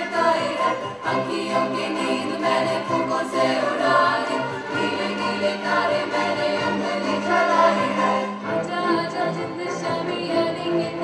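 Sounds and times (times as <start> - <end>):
choir singing: 0.0 - 11.0
string orchestra playing: 0.0 - 11.0.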